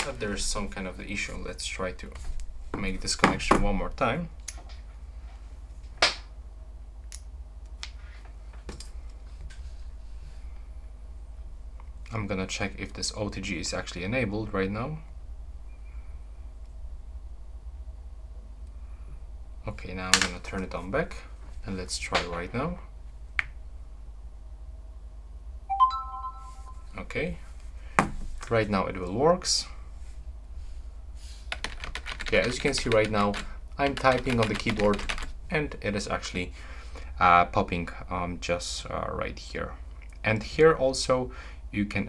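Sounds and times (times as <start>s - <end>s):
rising electronic chime: 25.7s - 26.9s.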